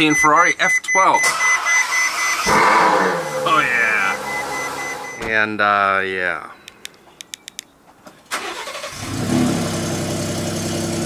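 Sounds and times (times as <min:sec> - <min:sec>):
dashboard chime beeping: 0:00.0 - 0:05.4
car engine starting and revving: 0:01.2 - 0:05.2, 0:08.3 - 0:11.0.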